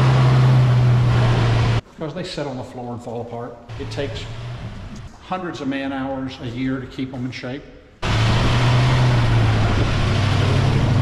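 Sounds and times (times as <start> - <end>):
car engine revving: 0.0 - 1.8, 3.7 - 5.1, 8.0 - 11.0
exhaust noise: 0.0 - 1.8, 3.7 - 5.1, 8.0 - 11.0.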